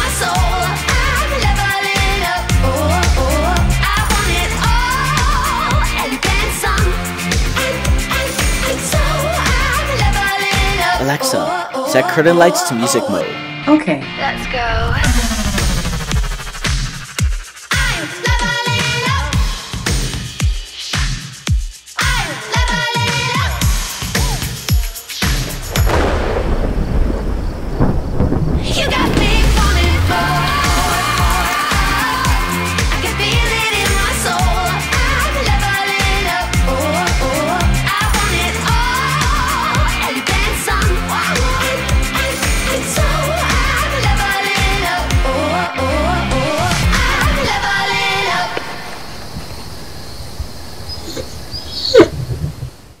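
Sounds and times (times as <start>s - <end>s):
pop music: 0.0s - 25.7s, 28.7s - 48.7s
deep rumbling: 2.4s - 5.9s, 14.2s - 17.0s, 25.6s - 32.6s, 45.8s - 53.0s.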